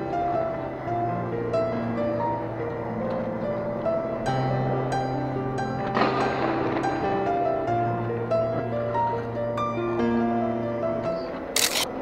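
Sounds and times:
soft background music: 0:00.0 - 0:12.0
camera shutter click: 0:11.5 - 0:11.9.

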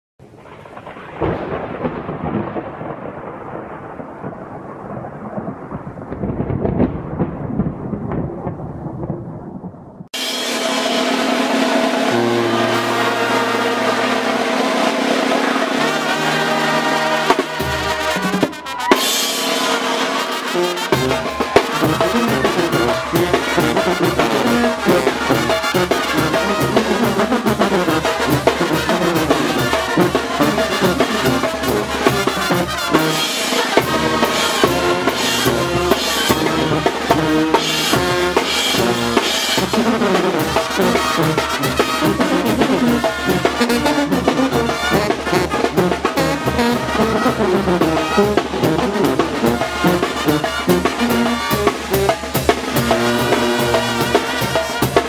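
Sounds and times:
brass band playing loudly: 0:10.1 - 0:55.0
steady drum beat: 0:10.2 - 0:55.0.

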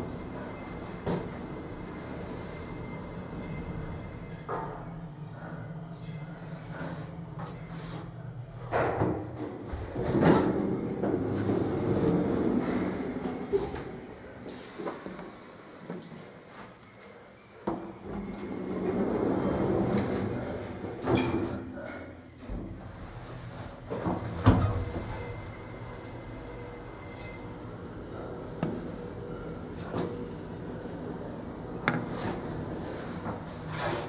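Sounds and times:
elevator low rumble: 0:00.0 - 0:15.6, 0:17.8 - 0:34.0
elevator doors sliding and clunking: 0:06.2 - 0:15.1, 0:17.7 - 0:34.0.

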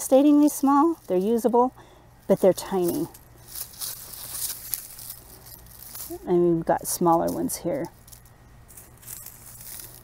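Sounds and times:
rustling and crackling of straw: 0:00.0 - 0:10.0.

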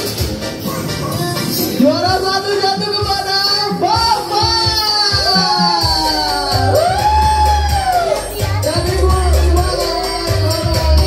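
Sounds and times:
steady bass beat: 0:00.0 - 0:11.0.

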